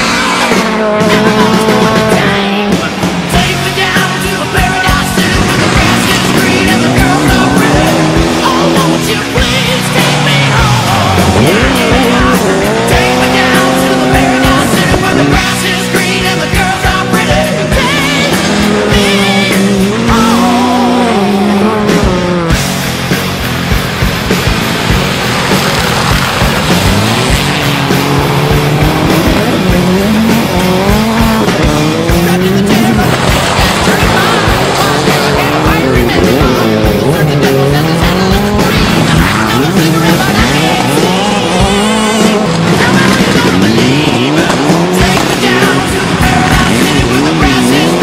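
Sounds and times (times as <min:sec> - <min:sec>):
background music: 0:00.0 - 0:48.0
rally car engines revving: 0:00.0 - 0:48.0.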